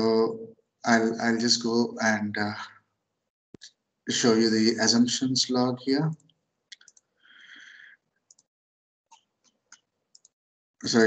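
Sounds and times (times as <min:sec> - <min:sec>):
computer mouse clicks: 0:08.3 - 0:08.5, 0:09.1 - 0:10.4.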